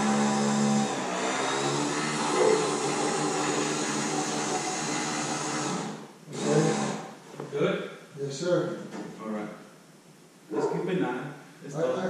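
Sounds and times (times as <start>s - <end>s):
electric motor humming: 0.0s - 7.1s.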